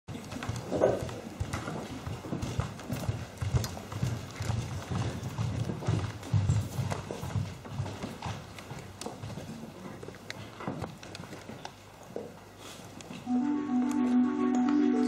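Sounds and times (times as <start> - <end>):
faint music: 13.1 - 15.0.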